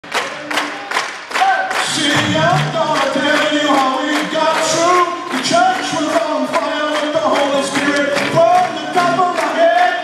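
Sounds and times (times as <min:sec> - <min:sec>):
congregation clapping: 0:00.0 - 0:10.0
church worship song: 0:00.2 - 0:10.0.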